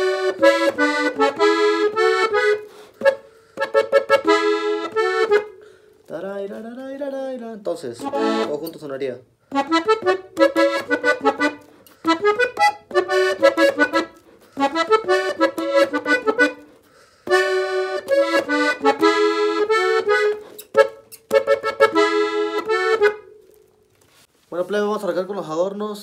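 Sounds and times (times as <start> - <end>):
piano accordion melody: 0.0 - 6.1, 8.0 - 24.2.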